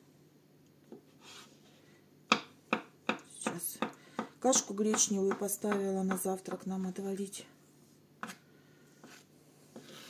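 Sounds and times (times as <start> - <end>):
knife scraping cutting board: 1.2 - 1.6, 9.0 - 10.0.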